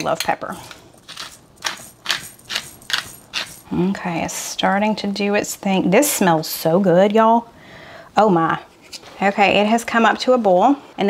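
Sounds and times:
pepper grinder scratchy bursts: 0.6s - 3.7s.

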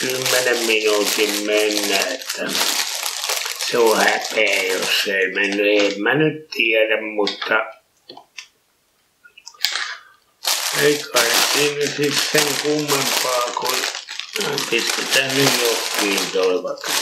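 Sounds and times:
man talking: 0.0s - 2.8s, 3.6s - 7.8s, 10.7s - 17.0s
plastic bags crinkling: 0.0s - 6.0s, 9.6s - 17.0s.

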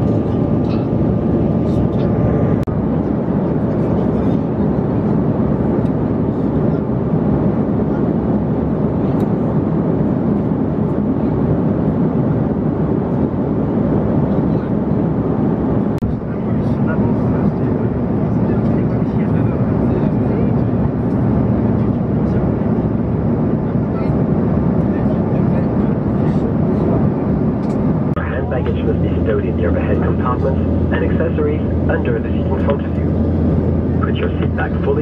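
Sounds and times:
jet engines droning: 0.0s - 35.0s
rushing airflow: 4.8s - 35.0s.

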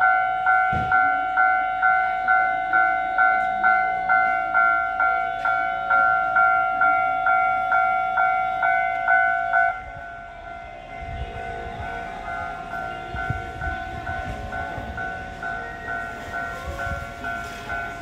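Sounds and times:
level-crossing warning bell ringing: 0.0s - 18.0s.

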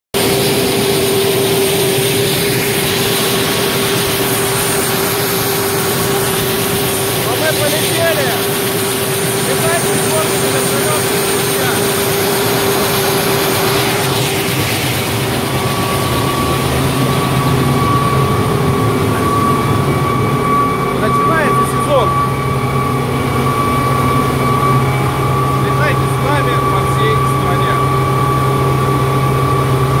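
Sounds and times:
helicopter turbine engines whining: 0.2s - 30.0s.

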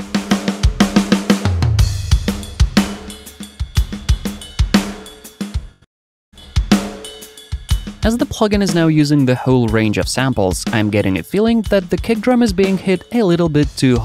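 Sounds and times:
acoustic drum kit rock groove: 0.0s - 5.8s, 6.4s - 14.0s.

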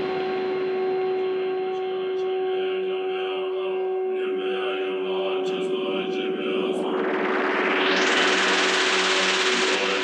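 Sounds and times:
low synth drone: 0.0s - 10.0s
white-noise swell with filter sweep: 4.9s - 10.0s.

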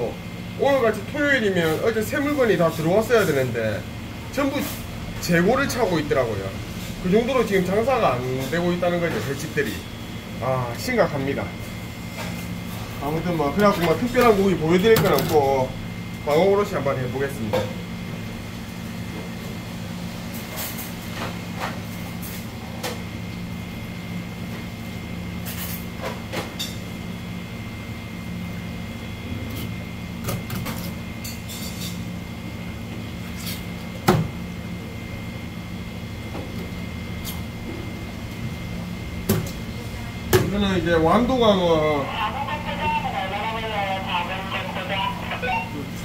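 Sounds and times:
low hum with high whine: 0.0s - 46.0s.

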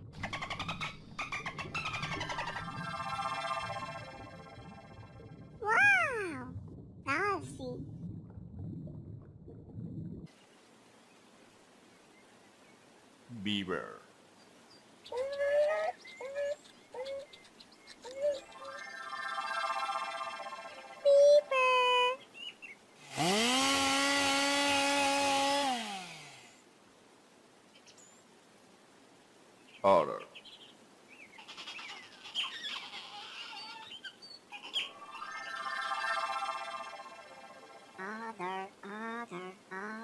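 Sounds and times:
otter chirping and squeaking: 31.4s - 35.0s.

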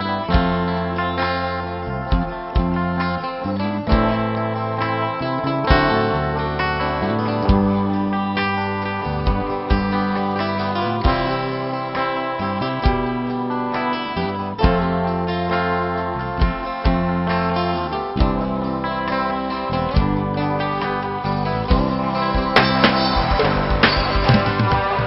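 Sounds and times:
live band playing: 0.0s - 25.0s
sharp drum hits: 22.4s - 25.0s.

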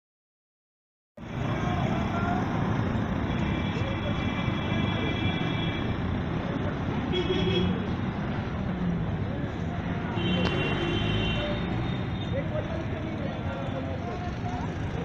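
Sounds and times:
vehicle engines running: 1.2s - 15.0s
people's voices: 1.3s - 15.0s.

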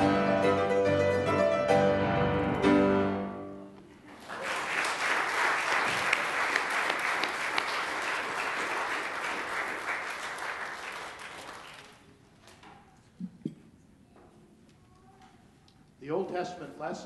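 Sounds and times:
congregation applauding: 4.1s - 12.1s.

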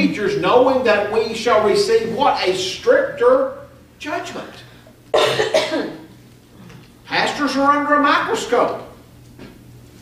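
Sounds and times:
man coughing: 5.1s - 6.1s.

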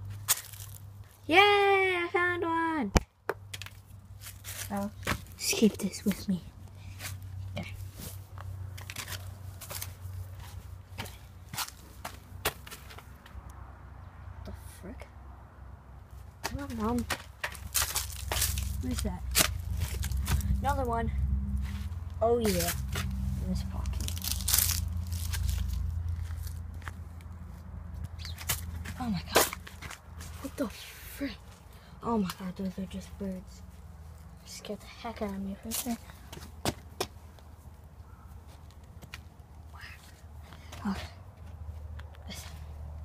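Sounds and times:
footsteps crunching dry leaves: 0.1s - 1.1s, 4.1s - 5.4s, 17.6s - 20.7s, 21.6s - 27.1s.

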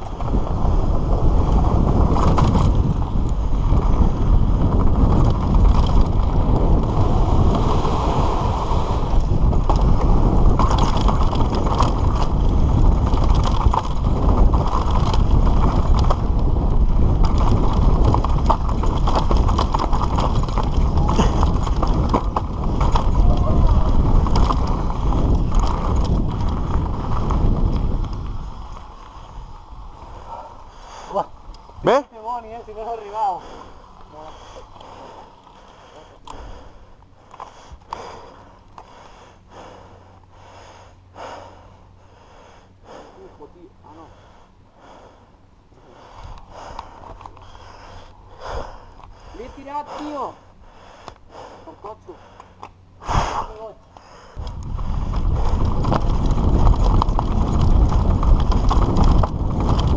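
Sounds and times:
bike frame and chain rattling: 0.0s - 39.0s, 46.0s - 50.5s, 54.2s - 59.9s
wind buffeting microphone: 0.0s - 45.2s, 45.8s - 59.9s.

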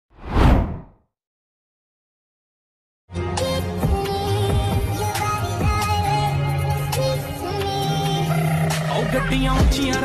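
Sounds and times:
whoosh sound effect: 0.2s - 0.9s.

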